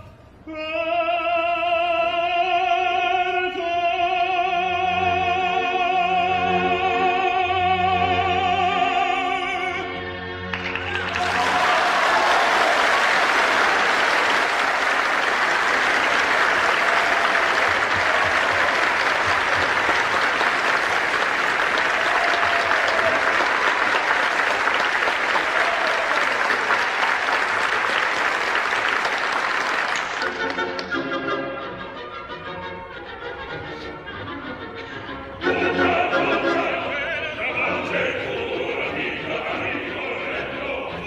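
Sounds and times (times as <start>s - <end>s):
opera singing: 0.0s - 10.1s, 35.4s - 41.0s
audience applauding: 10.5s - 30.9s.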